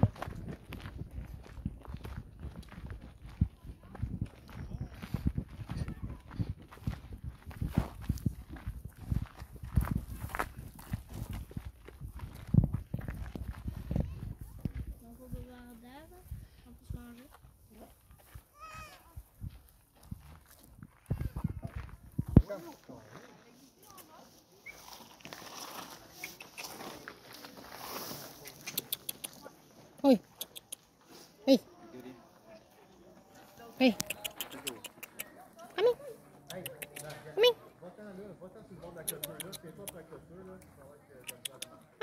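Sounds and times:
footsteps on gravel: 0:00.0 - 0:15.0, 0:17.1 - 0:28.8.

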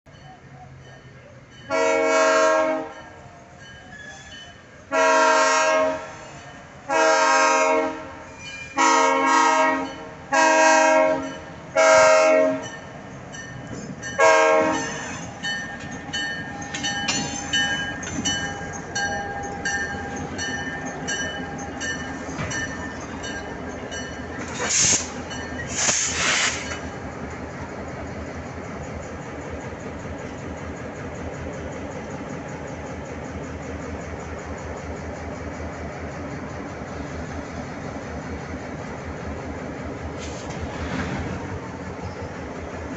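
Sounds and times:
wheels squealing on rail: 0:00.1 - 0:06.8, 0:08.2 - 0:10.1, 0:10.7 - 0:27.0, 0:40.2 - 0:42.5
locomotive engines rumbling: 0:00.1 - 0:42.9
locomotive air horn blasts: 0:01.7 - 0:03.0, 0:04.9 - 0:12.7, 0:14.2 - 0:15.2.

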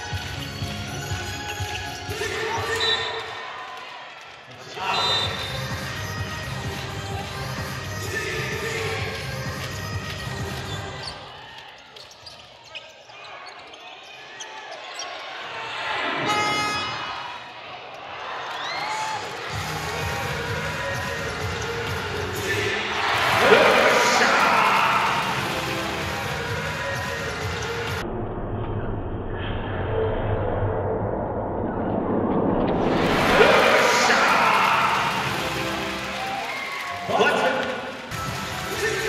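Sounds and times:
crowd cheering: 0:02.1 - 0:06.4, 0:12.7 - 0:28.0, 0:32.8 - 0:39.0
crowd voices: 0:10.6 - 0:28.0, 0:32.8 - 0:39.0.

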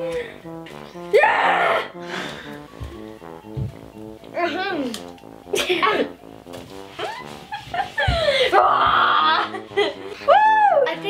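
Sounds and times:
light background music: 0:00.0 - 0:11.0
children squealing and shrieking: 0:08.4 - 0:09.5.

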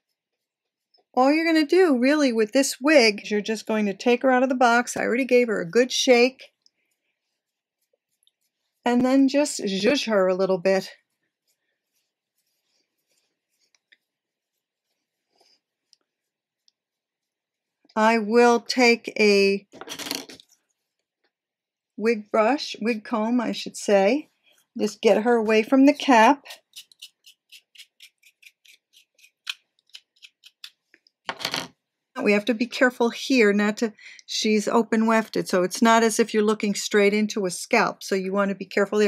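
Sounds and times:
fingers rustling through wig hair: 0:05.0 - 0:18.0.

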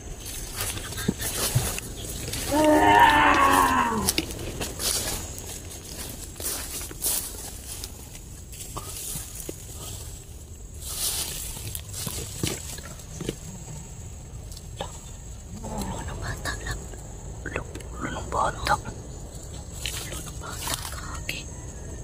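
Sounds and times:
steps through undergrowth: 0:00.0 - 0:13.7
long drawn-out call: 0:00.7 - 0:04.4.

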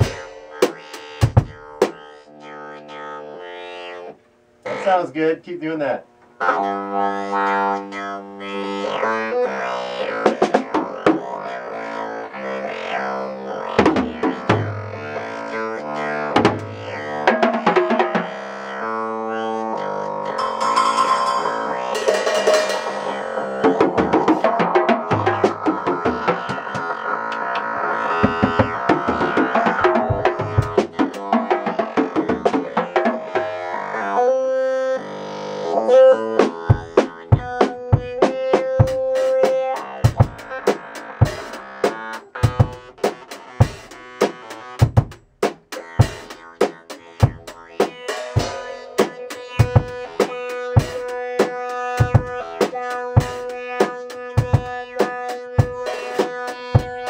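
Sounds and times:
acoustic drum kit: 0:00.0 - 0:02.0, 0:13.8 - 0:15.0, 0:16.4 - 0:18.3, 0:20.4 - 0:27.0, 0:28.2 - 0:33.5, 0:36.4 - 0:57.0.

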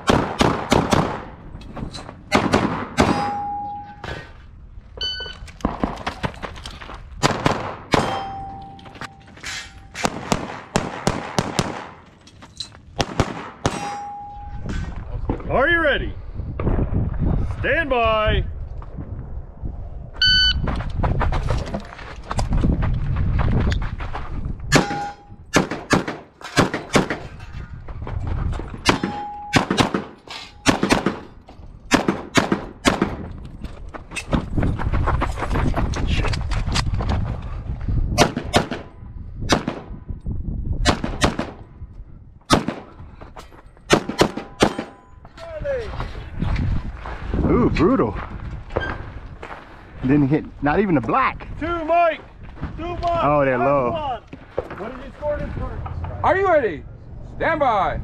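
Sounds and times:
pistol shots: 0:00.0 - 0:01.3, 0:02.3 - 0:03.5, 0:07.2 - 0:08.3, 0:10.0 - 0:12.0, 0:13.0 - 0:14.2, 0:24.7 - 0:27.2, 0:28.8 - 0:31.3, 0:31.9 - 0:33.2, 0:38.2 - 0:38.9, 0:40.8 - 0:41.6, 0:42.5 - 0:42.9, 0:43.9 - 0:45.0
shot timer beep: 0:05.0 - 0:05.4, 0:20.2 - 0:20.6.

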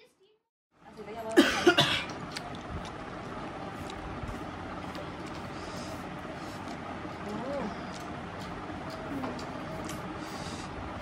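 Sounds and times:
person coughing: 0:01.4 - 0:02.1
voices: 0:07.1 - 0:10.6.

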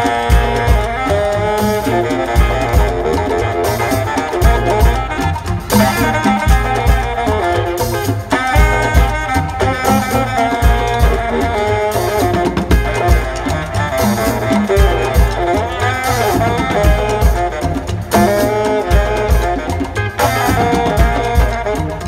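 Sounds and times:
drum kit beat: 0:00.0 - 0:22.0
electric guitar: 0:00.0 - 0:22.0
hand drums: 0:00.0 - 0:22.0
horn section playing melody: 0:00.0 - 0:22.0
keyboard: 0:00.0 - 0:22.0.

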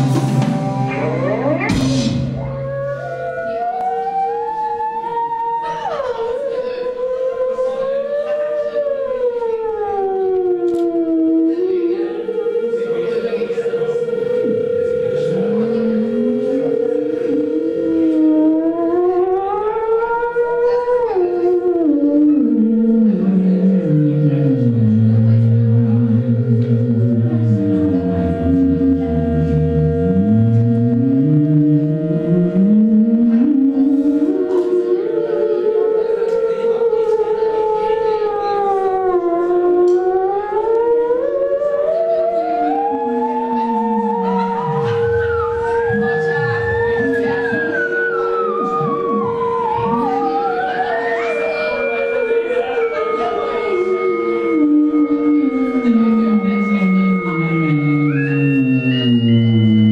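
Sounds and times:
keyboard fluttering held note: 0:00.0 - 0:59.9
theremin sliding in pitch: 0:00.0 - 0:59.9.

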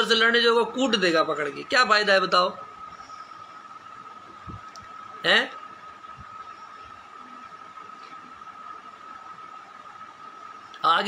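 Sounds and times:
faint high-pitched whine: 0:00.0 - 0:11.0
steady background hiss: 0:00.0 - 0:11.0.

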